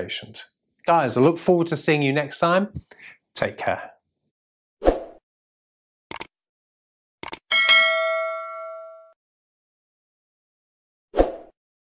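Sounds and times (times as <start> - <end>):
bell-like notification chime: 7.5 - 9.2.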